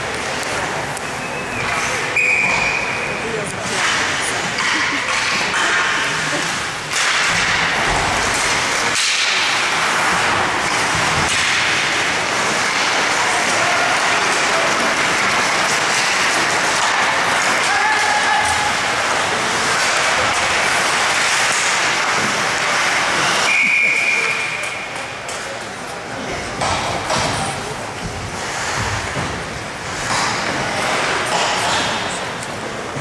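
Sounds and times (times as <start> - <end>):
referee's whistle: 2.2 - 3.1, 23.5 - 24.6
crowd shouting: 16.8 - 19.1.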